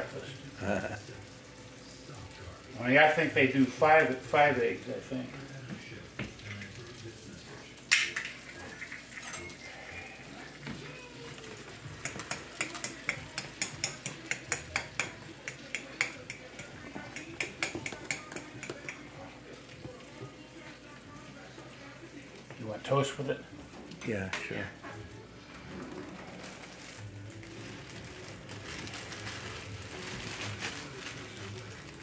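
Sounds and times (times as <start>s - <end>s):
faint frying in a pan: 0.0s - 32.0s
cookware clinking: 7.9s - 9.7s, 12.0s - 19.1s.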